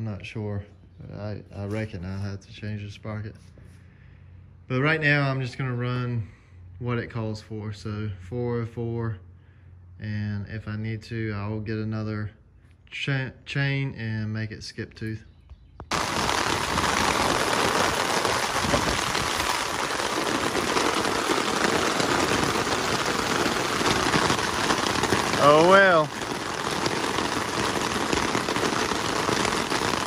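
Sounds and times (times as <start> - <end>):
rain on an umbrella: 15.9 - 30.0.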